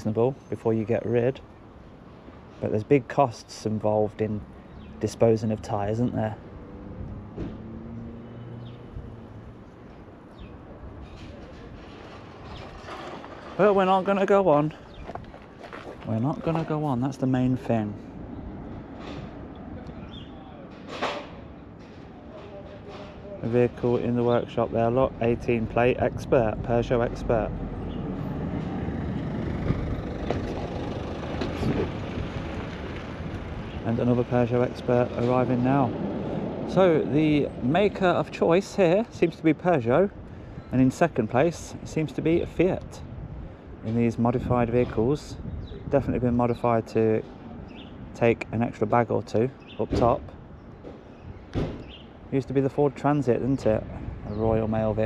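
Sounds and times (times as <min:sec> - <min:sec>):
vehicle engine hum: 0:04.0 - 0:16.8, 0:23.4 - 0:39.2.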